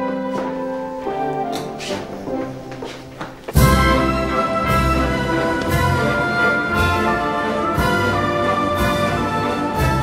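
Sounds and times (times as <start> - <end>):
orchestra playing a waltz: 0.0 - 10.0.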